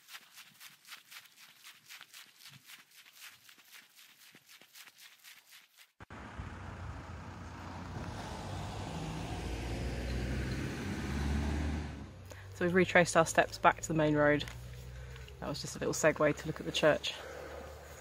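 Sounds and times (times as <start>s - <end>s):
footsteps on grass: 0.0s - 6.0s, 13.2s - 18.0s
road traffic rumble: 6.0s - 18.0s.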